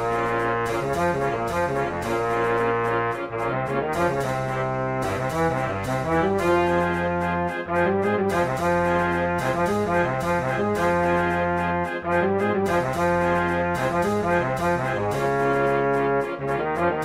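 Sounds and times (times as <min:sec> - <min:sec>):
wind band playing a march: 0:00.0 - 0:17.0.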